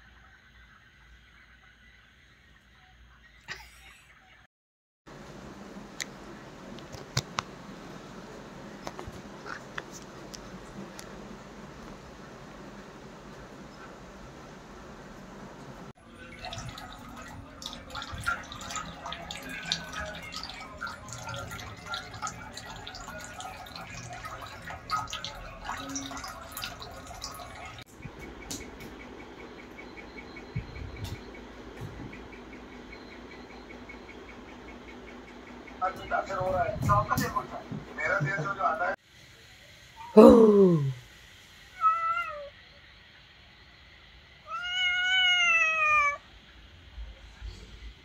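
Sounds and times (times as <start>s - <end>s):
water dripping into metal pot: 16.0s - 27.8s
cat meowing: 41.8s - 42.5s, 44.4s - 46.2s.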